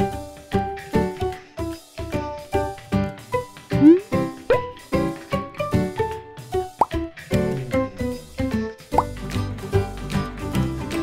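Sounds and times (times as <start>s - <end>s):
playful plucked background music: 0.0s - 11.0s
short rising bloop sounds: 3.8s - 4.6s.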